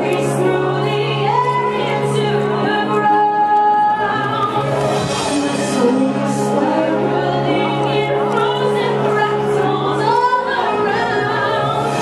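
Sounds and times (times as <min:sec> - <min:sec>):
backing track: 0:00.0 - 0:12.0
woman singing show tune: 0:00.0 - 0:12.0.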